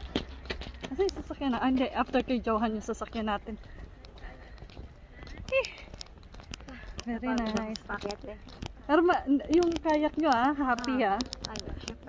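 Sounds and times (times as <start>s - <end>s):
footsteps on hard pavement: 0.0s - 12.0s.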